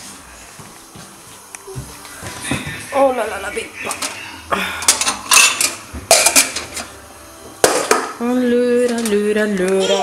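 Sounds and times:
glasses and dishes clinking: 4.8 - 6.9.

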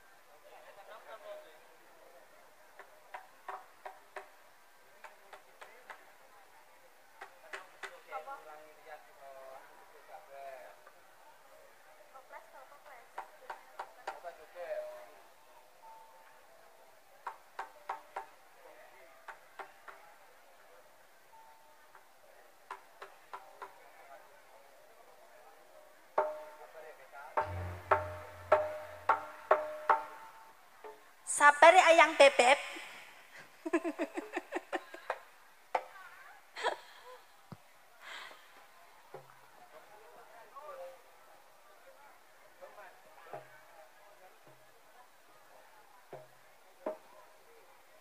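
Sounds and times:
gamelan percussion strikes: 27.4 - 30.3.

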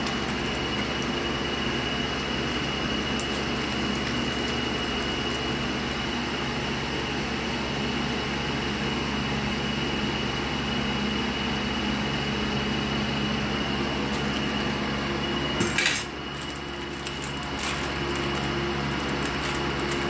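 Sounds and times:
oil sizzling in a frying pan: 0.0 - 7.2
low mechanical hum: 0.0 - 20.0
thin high whine: 12.6 - 20.0.

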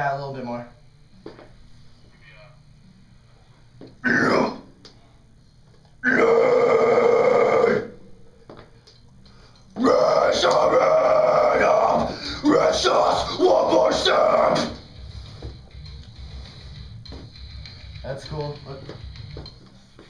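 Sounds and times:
harsh growled vocals: 4.0 - 4.6, 6.0 - 8.0, 9.8 - 14.8.

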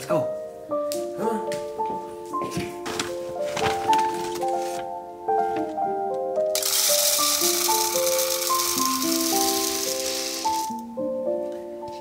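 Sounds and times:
background music: 0.0 - 12.0
seed pouring into plastic tube: 6.5 - 10.8.

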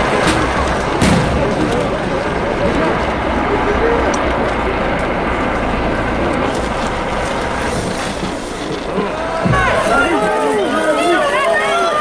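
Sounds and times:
helicopter flying overhead: 0.0 - 12.0.

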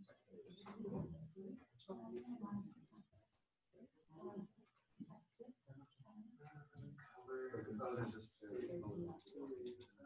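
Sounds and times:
faint indistinct talking: 0.0 - 10.0.

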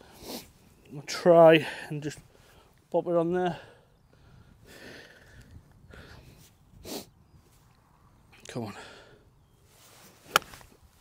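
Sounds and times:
wind rumble on microphone: 4.2 - 8.4
person sniffing: 6.8 - 7.2.

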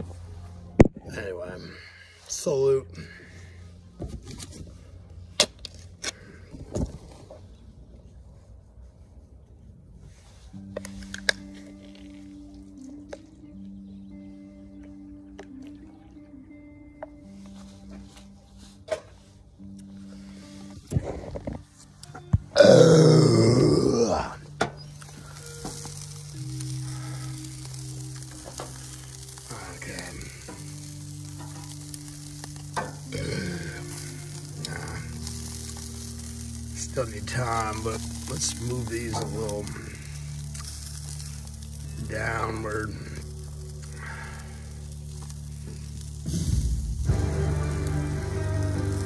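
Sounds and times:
background music low held notes: 0.0 - 49.0
beer can cracked open: 5.4 - 6.2, 10.8 - 12.2, 23.2 - 41.8
steady low tones: 19.4 - 49.0
chicken wings sizzling on a grill: 22.6 - 49.0.

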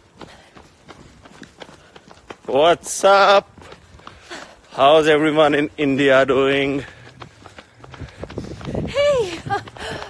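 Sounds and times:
running footsteps on pavement: 0.0 - 10.0.

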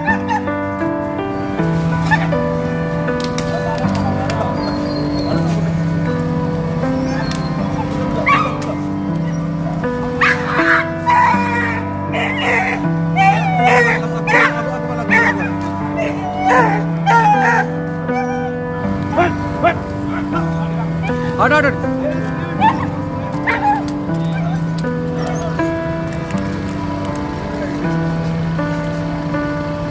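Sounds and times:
dog crying out: 0.0 - 0.5, 2.0 - 2.4, 7.0 - 21.3, 22.0 - 24.6
background music with held notes: 0.0 - 29.9.

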